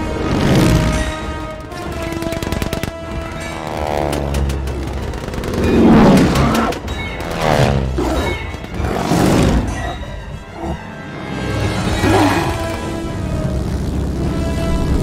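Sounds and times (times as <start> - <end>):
propeller planes diving past: 0.0 - 9.6
dramatic film score music: 0.0 - 15.0
machine-gun fire: 0.4 - 7.8.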